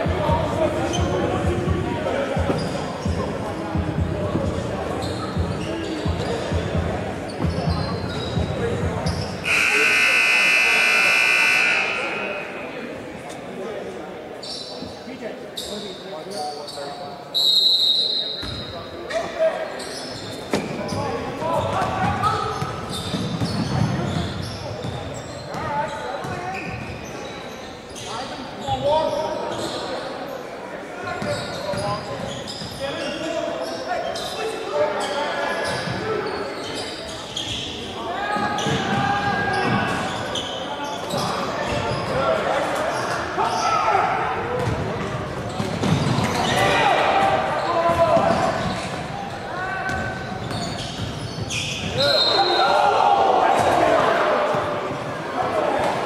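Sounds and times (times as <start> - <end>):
players and spectators voices: 0.0 - 56.0
sneakers squeaking: 0.4 - 13.5, 14.4 - 30.2, 31.0 - 53.9
shrill tone: 9.4 - 12.7.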